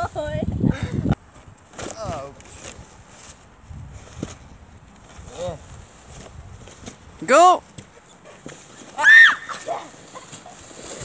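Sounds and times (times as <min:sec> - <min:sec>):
child squealing: 0:09.0 - 0:09.9.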